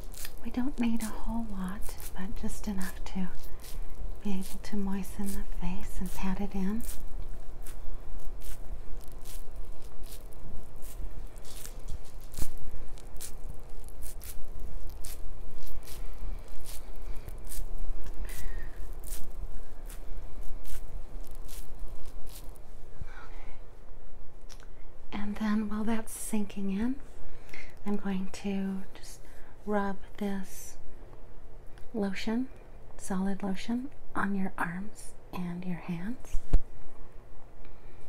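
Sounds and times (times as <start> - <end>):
damp cotton pad patting: 0.0 - 22.8.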